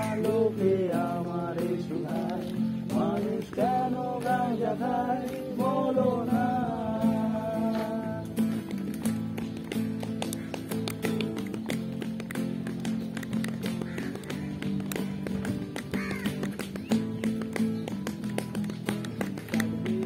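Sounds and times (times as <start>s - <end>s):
acoustic guitar strumming: 0.0s - 20.0s
percussive taps on guitar: 0.0s - 20.0s.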